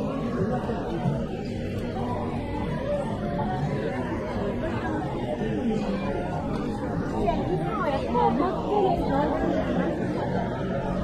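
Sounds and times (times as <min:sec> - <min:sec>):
crowd chatter: 0:00.0 - 0:11.0
street hubbub: 0:00.0 - 0:11.0.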